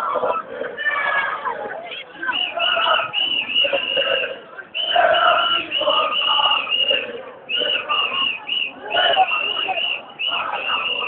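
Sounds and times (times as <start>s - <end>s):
crowd chanting and shouting: 0.0s - 11.0s.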